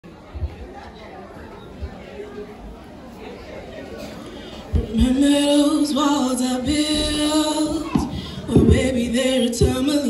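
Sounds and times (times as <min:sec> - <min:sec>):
audience chatter: 0:00.0 - 0:10.0.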